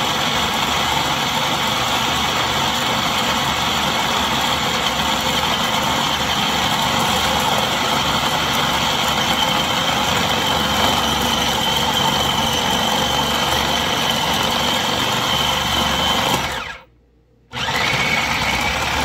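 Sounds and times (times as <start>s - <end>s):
food processor motor whining: 0.0s - 16.9s, 17.5s - 19.0s.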